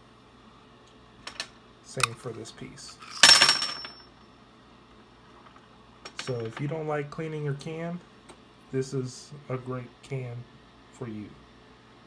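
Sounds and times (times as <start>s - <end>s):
person speaking: 1.9s - 3.0s.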